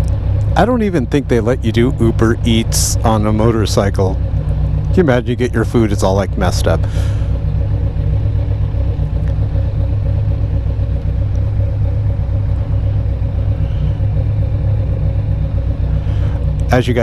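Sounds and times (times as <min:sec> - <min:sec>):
motorcycle engine idling: 0:00.0 - 0:17.0.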